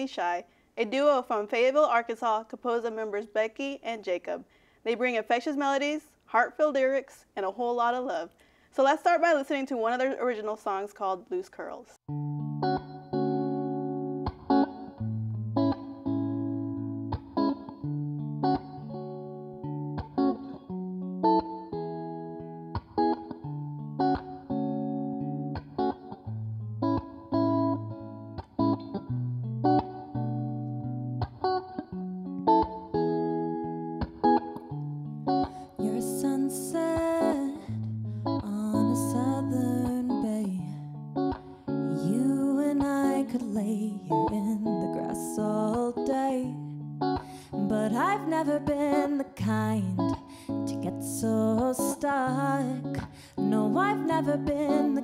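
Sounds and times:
electric guitar playing: 12.1 - 55.0
woman singing: 35.5 - 41.0, 41.6 - 55.0.

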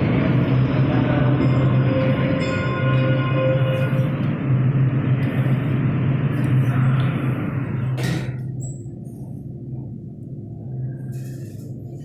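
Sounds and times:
lift low hum: 0.0 - 12.0.

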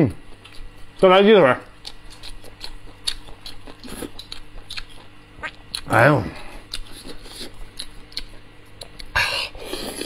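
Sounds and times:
person chewing meat: 0.2 - 1.0, 1.6 - 10.0.

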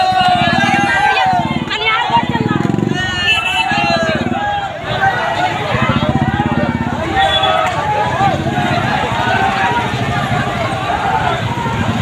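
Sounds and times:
crowd shouting: 0.0 - 12.0.

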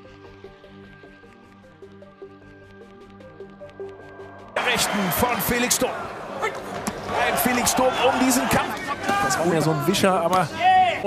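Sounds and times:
arena crowd noise: 4.6 - 11.0.

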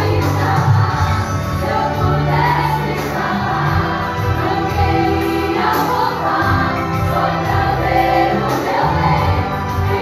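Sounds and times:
choir singing: 0.0 - 10.0
musical accompaniment: 0.0 - 10.0.

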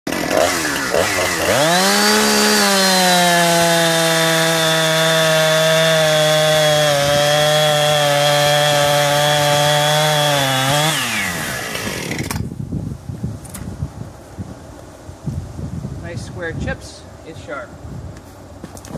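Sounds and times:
chainsaw cutting through log: 0.1 - 12.5.

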